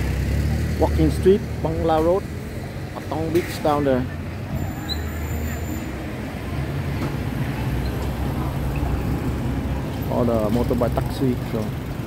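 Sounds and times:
motorbike and car engines droning: 0.0s - 12.0s.

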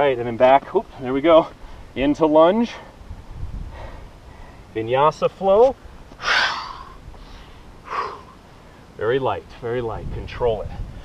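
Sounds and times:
man exhaling loudly: 6.2s - 7.0s, 7.9s - 8.4s.

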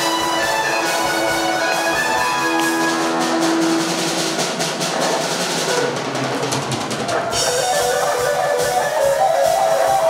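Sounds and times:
held keyboard notes: 7.3s - 10.0s.

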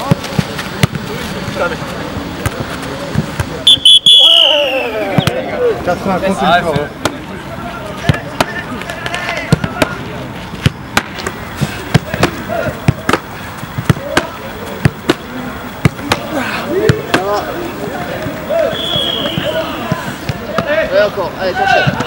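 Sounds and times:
balls thudding into gloves: 0.0s - 1.2s, 8.0s - 17.5s.

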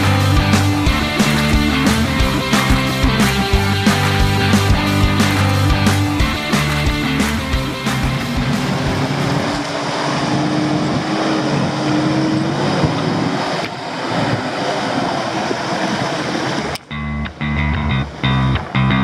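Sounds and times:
rock music with guitar: 0.0s - 9.6s, 16.9s - 19.0s
engine running under load: 0.0s - 19.0s
road and tyre noise: 0.0s - 19.0s.

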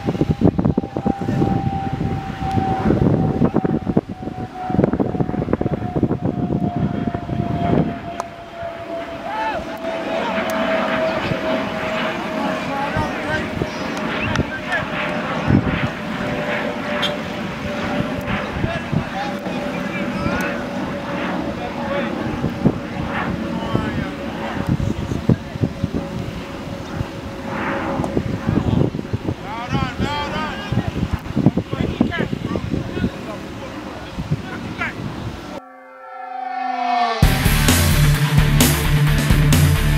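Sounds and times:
outdoor ambience: 0.0s - 29.5s
indistinct voices chattering: 0.8s - 27.9s
synthesized horn-like chord: 35.5s - 39.9s.

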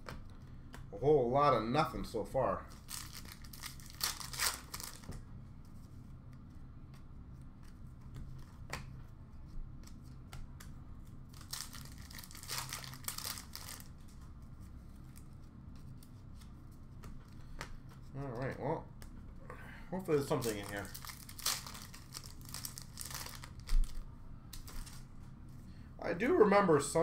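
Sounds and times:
low room hum: 0.0s - 27.0s
wrapper tearing and crinkling: 2.7s - 5.1s, 11.3s - 14.0s, 20.2s - 25.0s.

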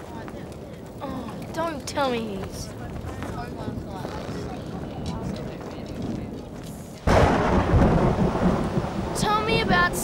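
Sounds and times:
thunder clap and rumble: 5.0s - 10.0s.

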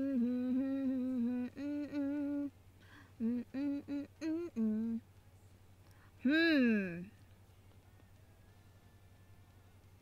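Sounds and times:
person humming: 0.0s - 2.5s, 3.2s - 5.0s, 6.2s - 7.1s.

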